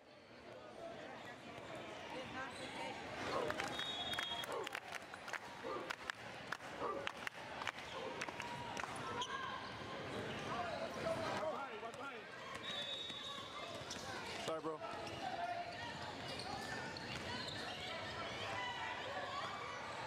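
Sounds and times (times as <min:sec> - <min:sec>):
indistinct chatter of many voices: 0:00.0 - 0:20.0.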